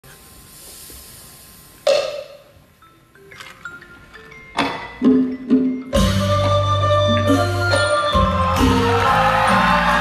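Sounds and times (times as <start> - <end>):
hall hiss: 0.1 - 1.8.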